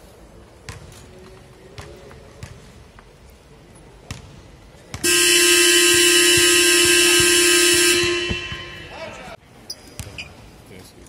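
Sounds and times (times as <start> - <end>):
basketballs bouncing on hardwood: 0.6 - 2.7, 4.0 - 8.9
basketball horn blast: 5.0 - 9.4.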